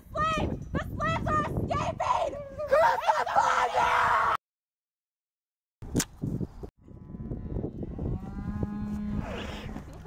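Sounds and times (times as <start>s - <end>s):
cow mooing: 7.1s - 9.8s.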